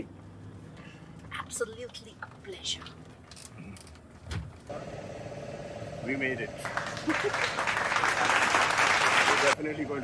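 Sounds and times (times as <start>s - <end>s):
car cabin road rumble: 0.0s - 4.9s.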